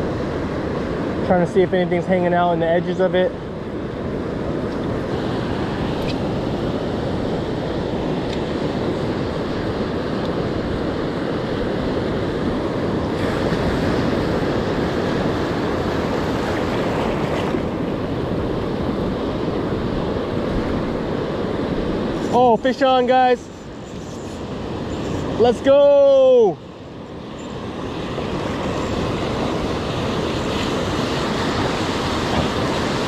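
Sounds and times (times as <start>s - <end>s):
ocean surf washing: 0.0s - 33.0s
wind on microphone: 3.5s - 33.0s.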